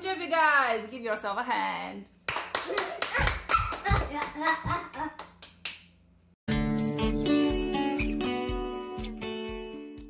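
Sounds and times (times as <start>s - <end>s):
people clapping: 2.3s - 5.9s.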